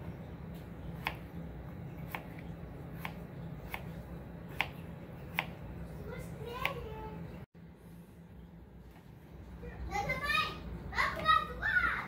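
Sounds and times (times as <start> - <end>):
child talking: 6.0 - 7.4, 9.6 - 12.0.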